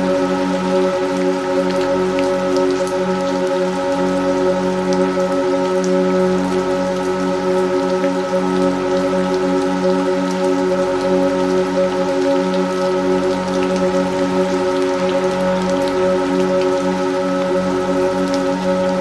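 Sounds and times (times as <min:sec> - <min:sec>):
steady rain: 0:00.0 - 0:19.0
synthesizer drone: 0:00.0 - 0:19.0
rain drop ticks: 0:00.1 - 0:19.0.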